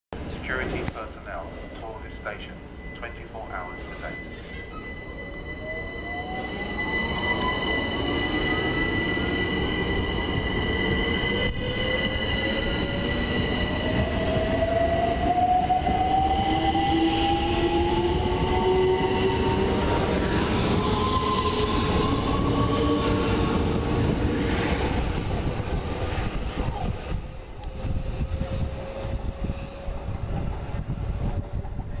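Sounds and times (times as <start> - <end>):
wheels rumbling on rails: 23.5 - 32.0.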